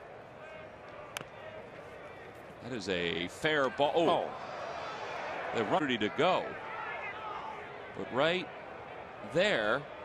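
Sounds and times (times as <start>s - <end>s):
ballpark crowd murmur: 0.0s - 10.0s.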